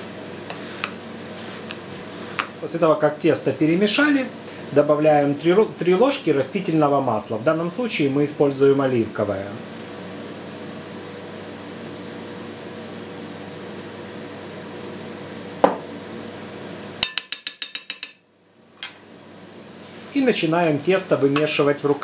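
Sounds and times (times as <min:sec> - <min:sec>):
low room hum: 0:00.0 - 0:22.0
metal spoon clinking glass bowl: 0:17.0 - 0:18.3.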